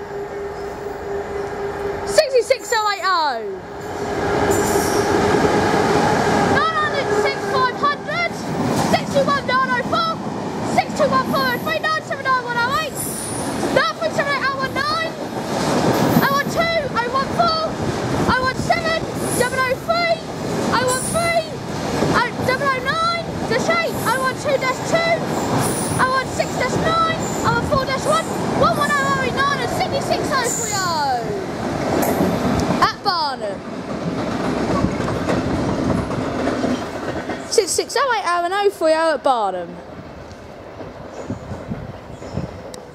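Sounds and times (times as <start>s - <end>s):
train wheels rumbling on rails: 0.0s - 42.9s.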